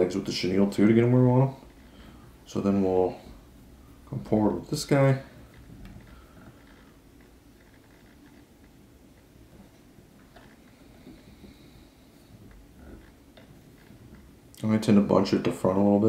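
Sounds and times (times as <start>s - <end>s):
quiet rustles: 0.0s - 16.0s
small ticks: 5.4s - 11.6s.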